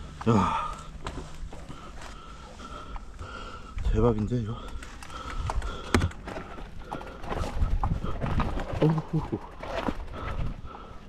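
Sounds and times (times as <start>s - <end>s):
rider grunting and breathing: 0.0s - 11.0s
bike rattling over rocks: 4.2s - 11.0s.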